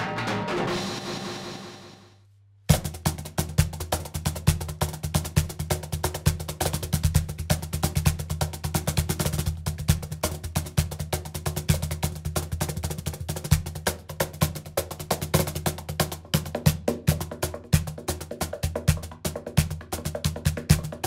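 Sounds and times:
cajon hand strokes: 2.7s - 21.0s.

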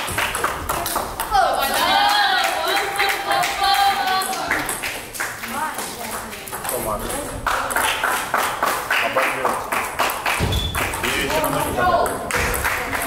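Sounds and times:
ping pong ball clicking on paddles: 6.0s - 7.9s, 10.4s - 13.0s
people talking: 11.0s - 13.0s.

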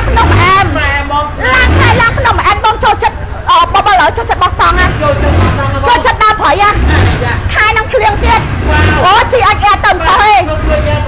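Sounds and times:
woman talking: 0.0s - 0.8s, 1.4s - 5.0s, 5.8s - 6.9s, 7.5s - 10.6s.

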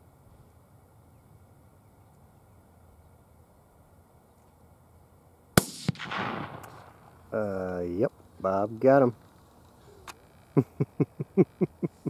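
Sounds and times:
man laughing: 10.5s - 12.0s.

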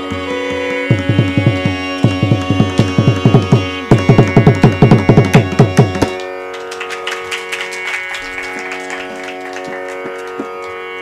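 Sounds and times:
tanpura drone: 0.0s - 11.0s.

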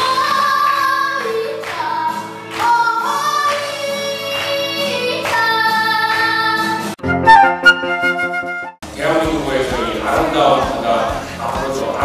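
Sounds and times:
boy singing into a microphone: 0.0s - 6.8s.

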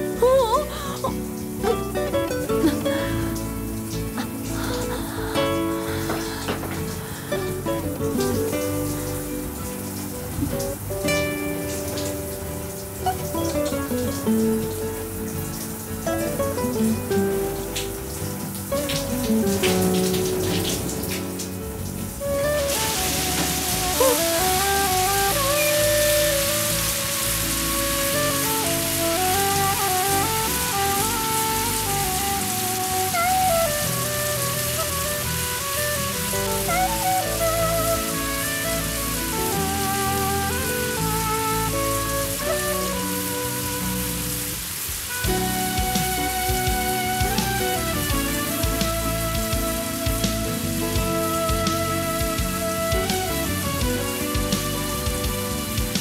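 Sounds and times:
music score: 0.0s - 56.0s
shower spraying water: 0.0s - 56.0s.

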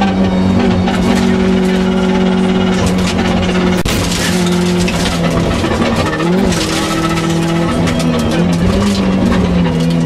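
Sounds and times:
car engine at high revs: 0.0s - 10.0s
road and tyre noise: 0.0s - 10.0s.

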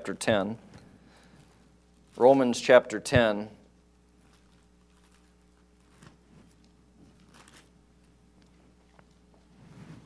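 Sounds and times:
faint low hum: 0.0s - 10.0s
pages rustling: 4.2s - 7.8s.

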